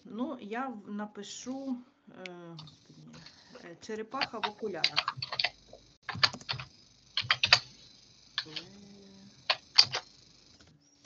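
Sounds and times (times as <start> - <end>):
typing on computer keyboard: 4.2 - 7.7.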